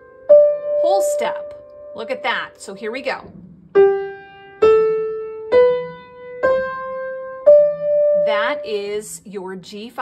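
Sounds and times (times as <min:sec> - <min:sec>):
piano playing a scale: 0:00.0 - 0:09.0.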